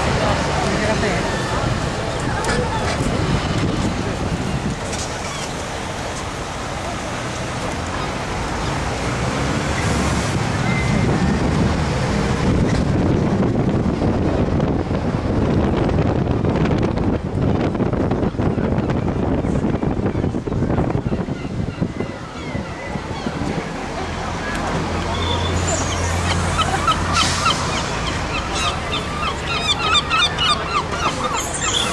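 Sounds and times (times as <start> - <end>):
wind buffeting microphone: 0.0 - 5.8, 9.2 - 31.9
moving vehicle rumble: 0.0 - 31.9
road traffic: 0.0 - 31.9
street crowd chatter: 0.0 - 31.9.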